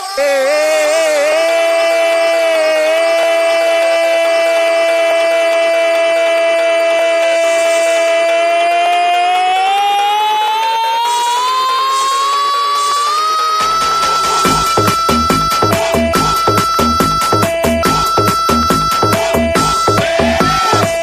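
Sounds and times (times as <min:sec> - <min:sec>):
electronic dance music: 0:00.0 - 0:21.0
pulsing undertone: 0:00.0 - 0:21.0
electronic siren-like tone: 0:07.4 - 0:21.0.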